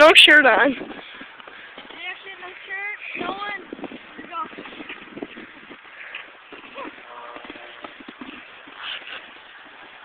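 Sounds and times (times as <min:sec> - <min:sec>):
snowboard scraping over snow: 0:01.9 - 0:10.0.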